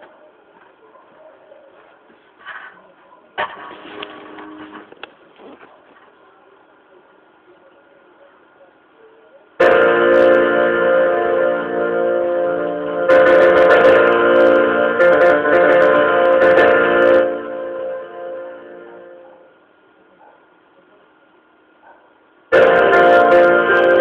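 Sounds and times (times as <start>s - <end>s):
piano chords ringing: 9.6s - 19.6s, 22.5s - 24.0s.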